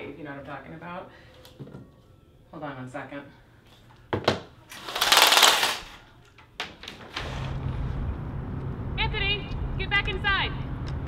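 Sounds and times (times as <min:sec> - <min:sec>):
window blinds clicking: 0:04.7 - 0:06.0
window blinds rattling: 0:04.7 - 0:06.0
low traffic hum: 0:07.1 - 0:11.0.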